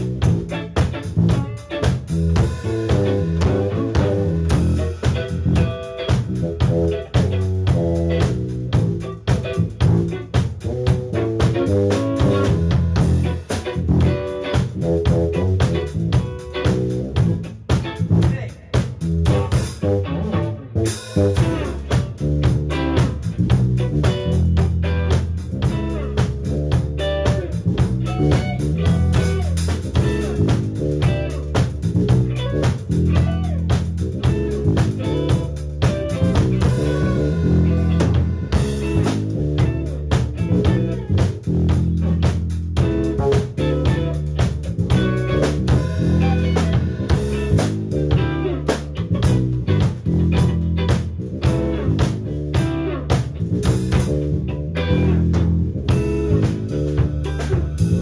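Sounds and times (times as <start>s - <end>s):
bass guitar: 0.0s - 58.0s
drum kit: 0.0s - 58.0s
electric guitar: 0.0s - 58.0s.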